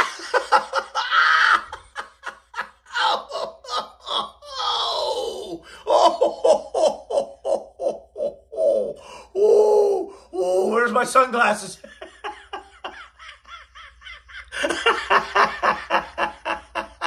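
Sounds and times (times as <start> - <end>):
person laughing hard: 0.0 - 10.0, 11.9 - 17.0.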